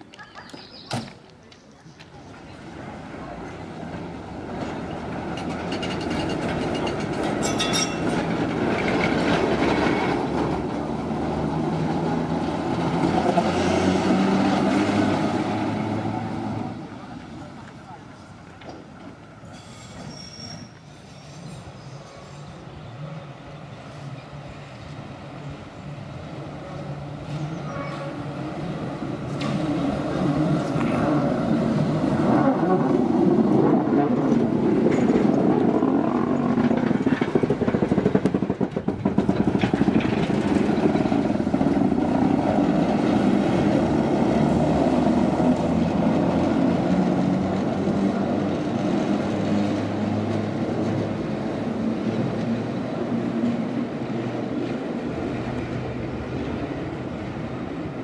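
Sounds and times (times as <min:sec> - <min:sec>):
tram wheels and motors rumbling: 0:00.0 - 0:58.0.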